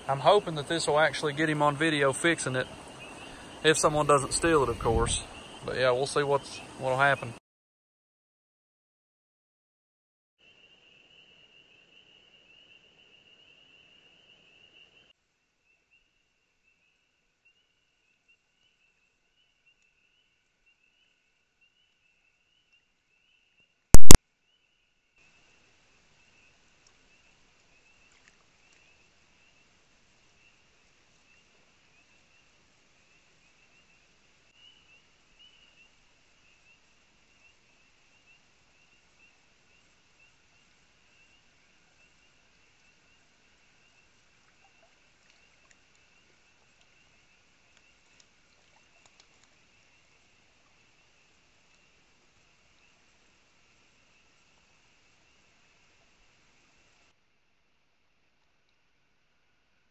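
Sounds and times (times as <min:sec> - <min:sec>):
night insects trilling: 0:00.0 - 0:07.4
loud sharp click: 0:24.0 - 0:24.2.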